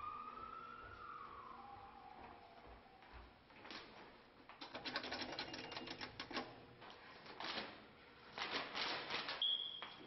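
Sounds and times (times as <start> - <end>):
paper crackling and rustling: 8.4 - 9.4.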